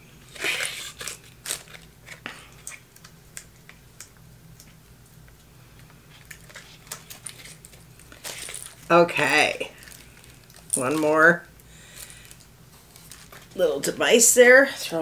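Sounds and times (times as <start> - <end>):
packaging crinkling and clicking: 0.4 - 4.8, 5.8 - 8.9, 9.8 - 11.2, 12.0 - 13.6.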